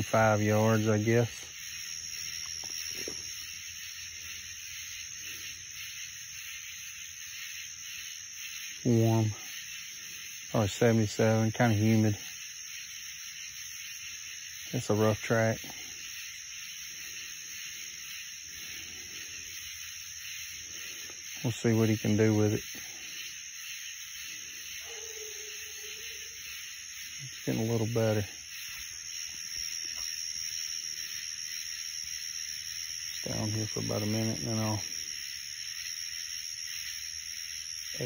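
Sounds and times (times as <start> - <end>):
night insects chorus: 0.0 - 38.0.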